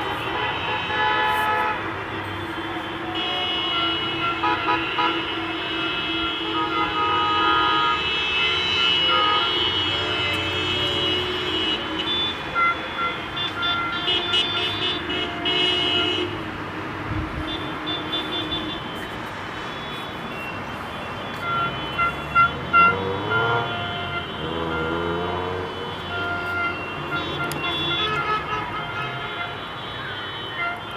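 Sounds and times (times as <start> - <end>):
car horns honking: 0.0 - 30.9.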